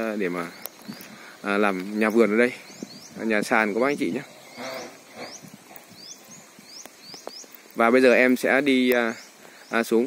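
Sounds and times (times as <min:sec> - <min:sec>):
bird chirps: 0:00.0 - 0:10.0.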